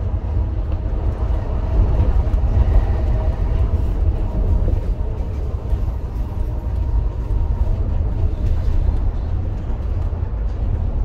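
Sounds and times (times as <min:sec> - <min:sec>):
bus engine rumbling: 0:00.0 - 0:11.0
road noise: 0:00.0 - 0:11.0.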